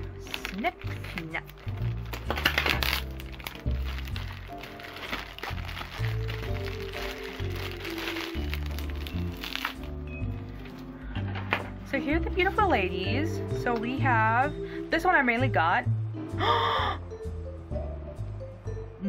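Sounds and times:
plastic bag crinkling: 0:00.0 - 0:10.9
background music: 0:00.0 - 0:19.0.

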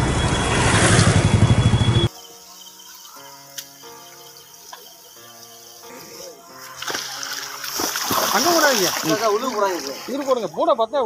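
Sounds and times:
background music with held notes: 0:02.1 - 0:10.6
water splashing: 0:06.5 - 0:10.6.

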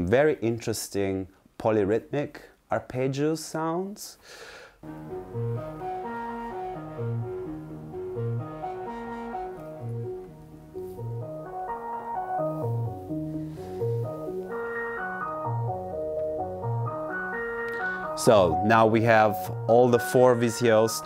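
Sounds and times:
analog synthesizer arpeggio: 0:04.8 - 0:20.9.

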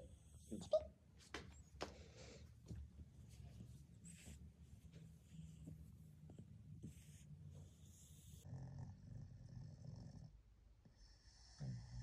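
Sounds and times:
dog snoring softly: 0:06.7 - 0:12.0.

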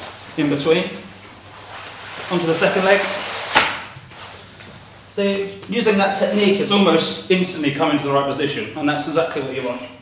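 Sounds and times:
wetsuit rustling: 0:00.0 - 0:06.8.

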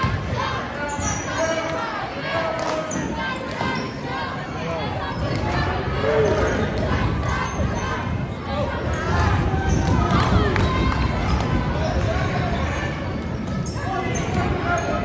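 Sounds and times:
sneaker squeaks: 0:00.8 - 0:01.7, 0:02.8 - 0:04.0, 0:12.6 - 0:15.0.

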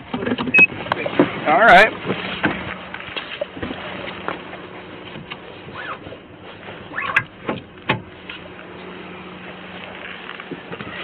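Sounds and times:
low hum from car: 0:00.0 - 0:11.0
person climbing into car seat: 0:02.0 - 0:11.0.

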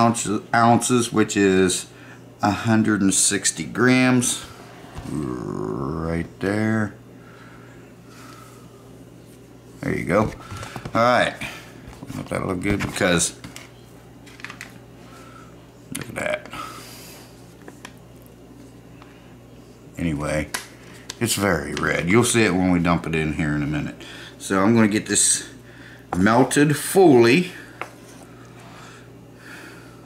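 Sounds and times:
low steady hum: 0:00.0 - 0:30.0
short vocal sound: 0:04.4 - 0:06.1.

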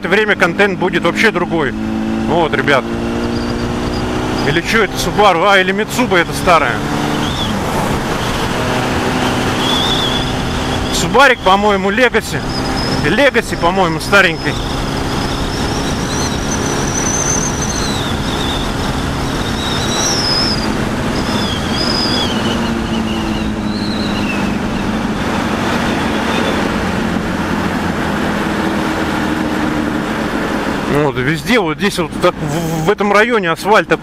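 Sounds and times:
motorcycle engine cruising: 0:00.0 - 0:34.0
wind rush on microphone: 0:06.6 - 0:11.0, 0:14.0 - 0:31.0
thin high whistles: 0:07.2 - 0:07.6, 0:09.5 - 0:11.0, 0:14.3 - 0:18.7, 0:19.4 - 0:24.8.

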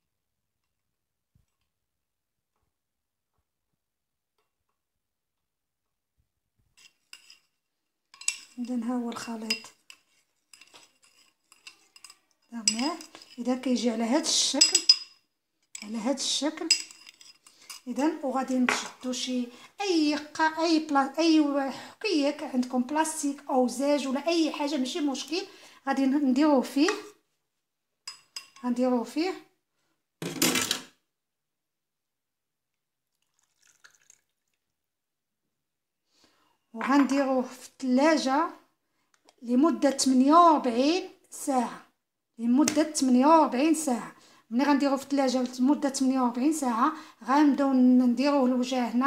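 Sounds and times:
spoon stirring liquid: 0:06.8 - 0:19.1, 0:28.1 - 0:28.6, 0:33.2 - 0:34.6
kitchenware clattering: 0:08.2 - 0:13.4, 0:14.5 - 0:15.9, 0:16.5 - 0:17.9, 0:28.1 - 0:28.6
spoon clinking against bowl: 0:08.2 - 0:13.4, 0:14.6 - 0:15.2, 0:16.6 - 0:17.9, 0:28.1 - 0:28.6.

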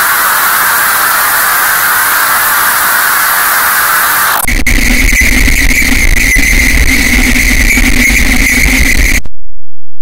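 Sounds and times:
distorted drone with high tone: 0:00.0 - 0:09.3.

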